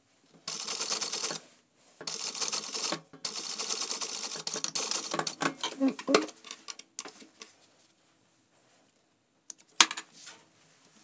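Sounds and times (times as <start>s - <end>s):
sewing machine stitching rapidly: 0.5s - 1.4s, 2.1s - 5.4s.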